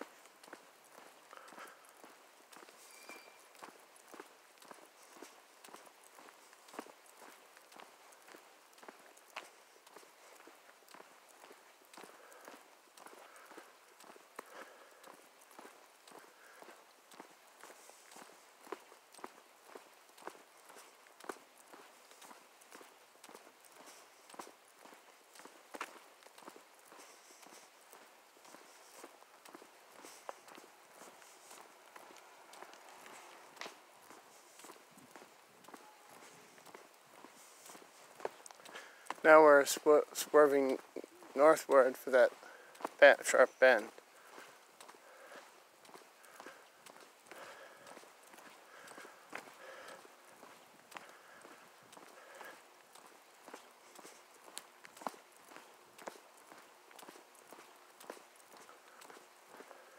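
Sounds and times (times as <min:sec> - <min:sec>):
footsteps on asphalt: 0:00.0 - 0:59.9.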